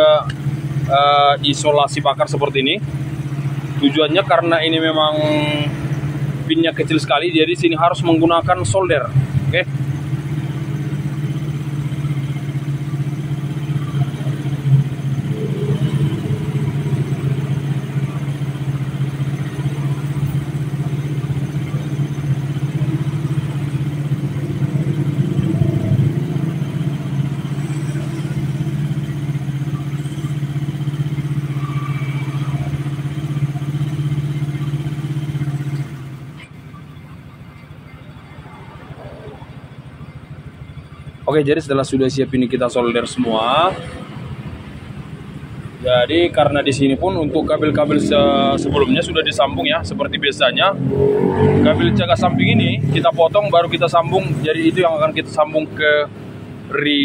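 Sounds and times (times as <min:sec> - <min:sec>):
engine idling: 0:00.0 - 0:50.8, 0:51.8 - 0:57.0.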